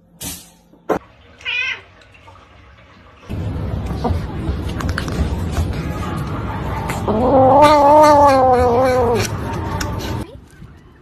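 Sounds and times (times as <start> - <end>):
kitten yowling: 7.1 - 9.3.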